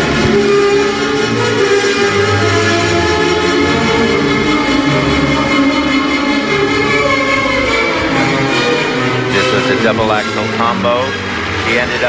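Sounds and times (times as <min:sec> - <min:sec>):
instrumental music with long held notes: 0:00.0 - 0:12.0.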